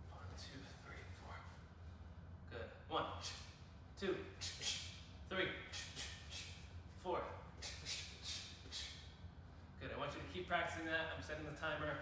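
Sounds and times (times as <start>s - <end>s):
low hum: 0.0s - 12.0s
sharp forced breaths: 5.6s - 6.7s, 7.6s - 9.1s.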